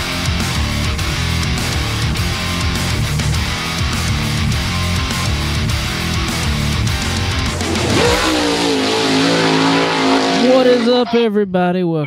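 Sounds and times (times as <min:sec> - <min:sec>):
race car engine at high revs: 0:01.2 - 0:11.1.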